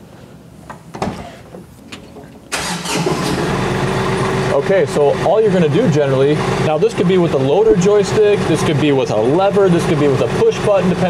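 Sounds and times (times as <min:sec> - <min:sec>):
tractor engine starting and idling: 0:02.5 - 0:11.0.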